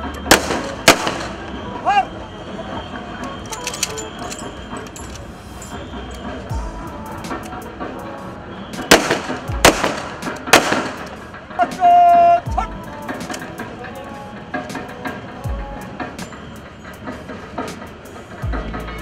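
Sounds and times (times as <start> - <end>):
background music: 0.0 - 19.0
crowd noise: 0.0 - 19.0
rifle volley cracks: 8.9 - 11.2.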